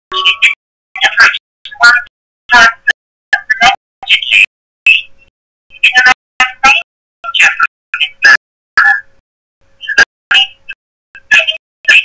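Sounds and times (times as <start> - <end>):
choppy radio speech: 0.1 - 9.2, 9.8 - 12.0.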